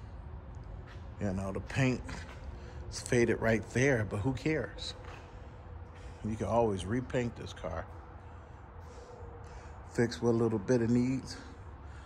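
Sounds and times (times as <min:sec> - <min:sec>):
low background hum: 0:00.0 - 0:12.0
soft breath: 0:05.1 - 0:06.3, 0:08.2 - 0:09.9, 0:11.3 - 0:12.0.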